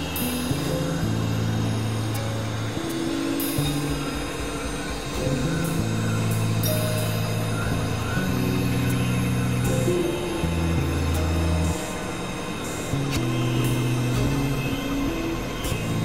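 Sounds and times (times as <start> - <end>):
experimental drone music: 0.0 - 16.0.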